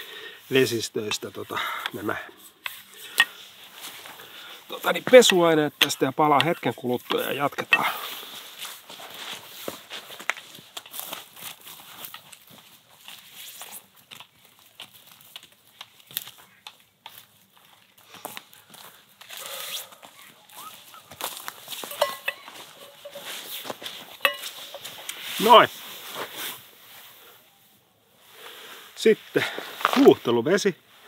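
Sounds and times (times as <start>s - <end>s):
footsteps on forest ground: 0.0s - 27.1s, 29.3s - 30.2s
rustling: 0.5s - 31.0s.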